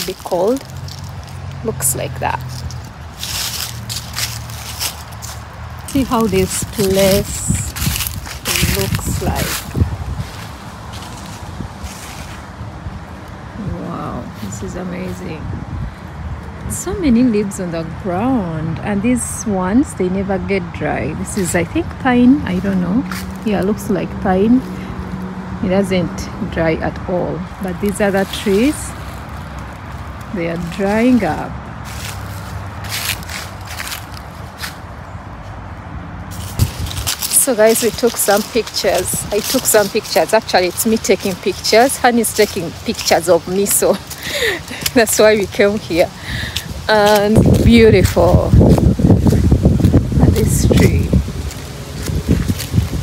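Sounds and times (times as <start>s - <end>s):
footsteps on dry leaves: 0.0s - 17.4s, 21.2s - 25.9s, 26.6s - 53.0s
wind rumbling on microphone: 0.0s - 53.0s.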